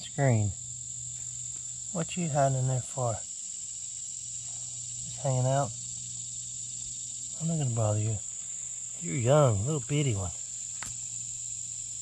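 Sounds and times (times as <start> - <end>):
high-pitched insect chorus: 0.0 - 12.0
steady low hum: 0.0 - 12.0.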